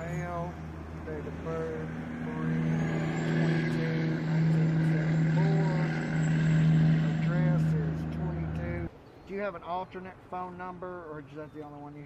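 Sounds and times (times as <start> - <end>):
vehicle engine idling: 0.0 - 8.9.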